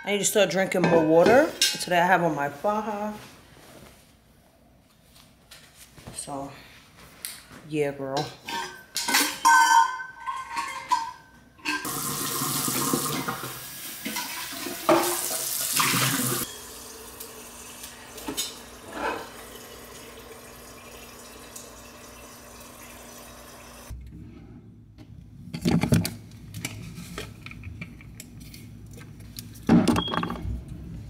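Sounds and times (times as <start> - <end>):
cup clinking: 8.5 - 12.0
water running into a cup: 11.8 - 23.9.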